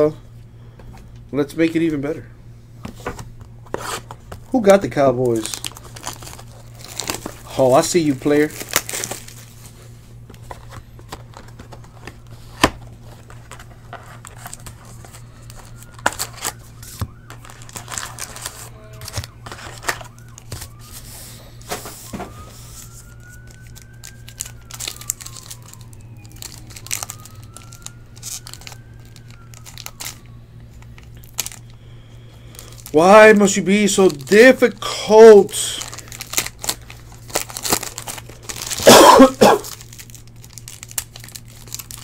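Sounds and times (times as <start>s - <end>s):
foil wrappers crinkling and tearing: 3.6s - 42.0s.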